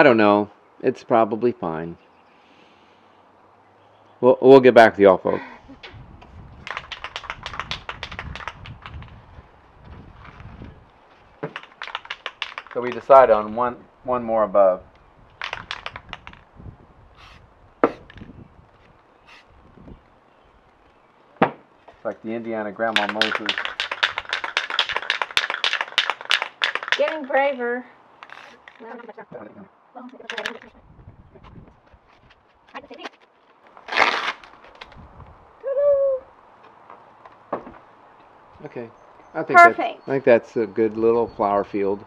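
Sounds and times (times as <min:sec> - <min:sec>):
spray can mixing ball rattling: 0:06.6 - 0:09.1, 0:11.4 - 0:13.1, 0:22.9 - 0:27.5.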